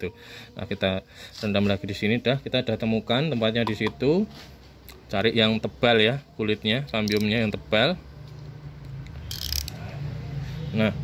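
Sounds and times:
ratchet-like mechanical clicking: 9.0 - 9.8.

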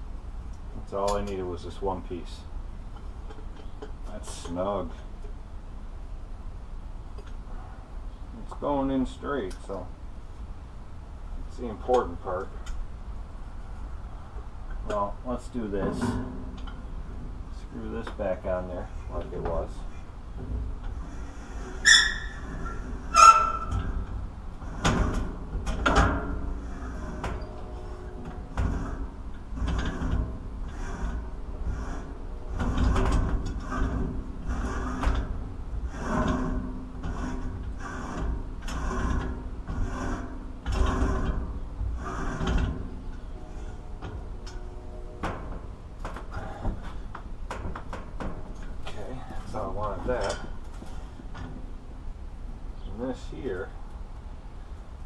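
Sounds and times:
pump tube scraping and knocking: 14.8 - 51.7.

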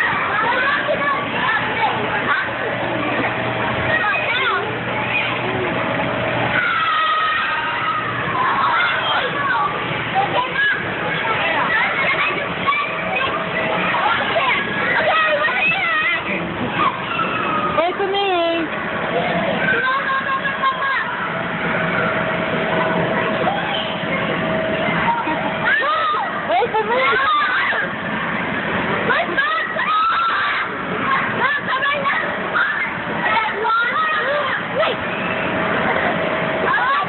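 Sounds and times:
children chattering and calling out: 0.0 - 37.0
steady hum: 0.0 - 37.0
steady rushing noise: 0.0 - 37.0.

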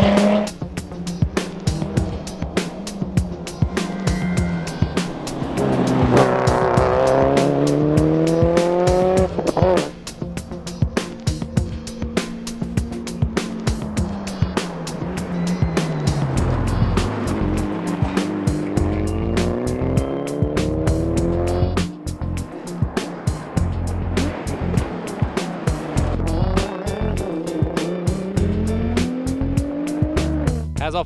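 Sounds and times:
rally car engines accelerating: 0.0 - 30.8
music with steady beat: 0.0 - 31.0.

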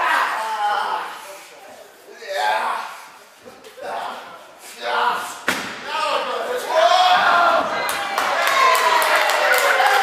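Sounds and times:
people shouting: 6.6 - 10.0.

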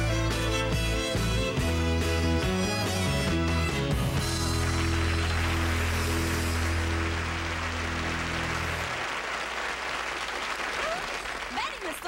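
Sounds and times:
audience applause: 4.2 - 12.0.

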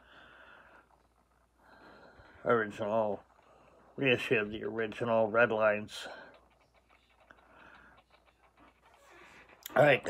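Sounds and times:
man breathing softly: 0.0 - 2.6, 3.3 - 4.0, 6.0 - 8.2.

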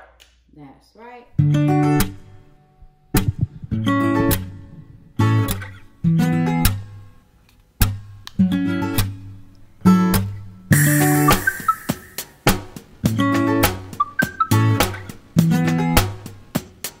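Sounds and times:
acoustic guitar strumming chords: 1.4 - 7.1, 8.4 - 16.4.

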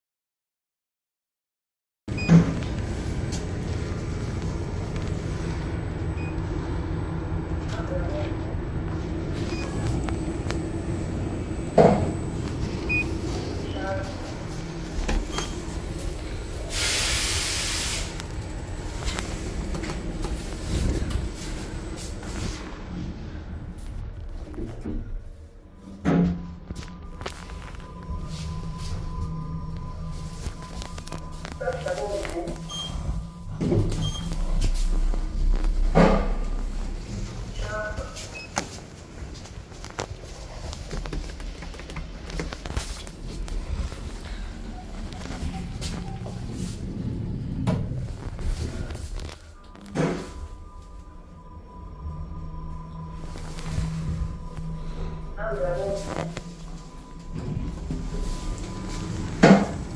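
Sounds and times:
elevator running hum: 2.1 - 59.9.

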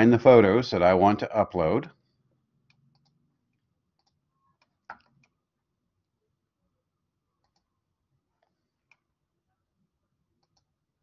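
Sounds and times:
computer mouse clicks: 2.6 - 3.2, 4.0 - 5.4, 7.4 - 7.7, 10.4 - 10.7.

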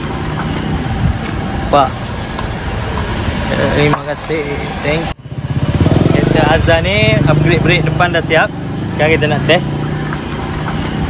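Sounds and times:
car engine low rumble: 0.0 - 11.0.

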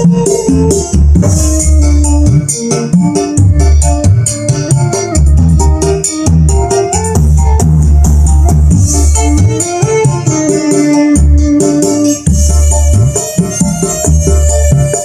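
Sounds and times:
loud music with bass and keyboard: 0.0 - 15.0.

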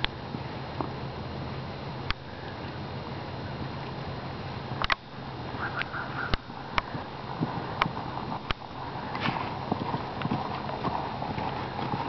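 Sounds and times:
horse hooves on soft dirt: 0.0 - 1.6, 2.6 - 12.0
background hiss: 0.0 - 12.0.

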